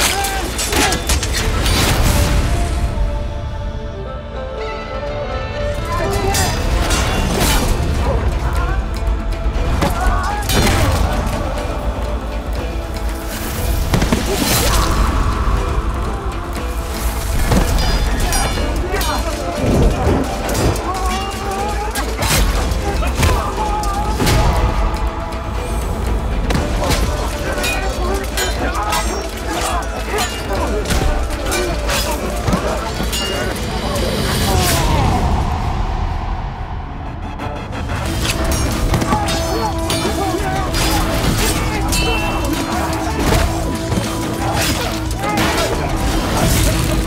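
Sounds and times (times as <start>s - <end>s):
men shouting and grunting: 0.0s - 1.4s, 5.7s - 36.0s, 38.0s - 47.0s
swords clashing: 0.0s - 1.6s, 26.5s - 33.7s, 38.2s - 47.0s
dramatic music with booming hits: 0.0s - 47.0s.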